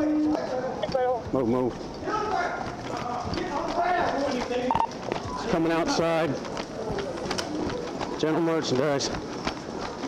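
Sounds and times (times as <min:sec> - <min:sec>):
voices: 0:00.0 - 0:10.0
running footsteps on hard floor: 0:00.3 - 0:10.0.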